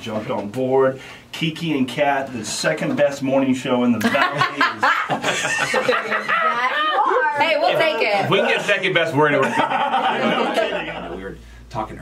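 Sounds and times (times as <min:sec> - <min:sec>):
woman laughing: 0:04.1 - 0:07.4.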